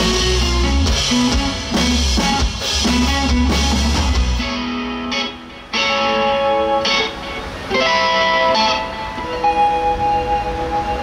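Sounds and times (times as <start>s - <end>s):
bass guitar: 0.0s - 11.0s
clean electric guitar notes: 2.9s - 11.0s.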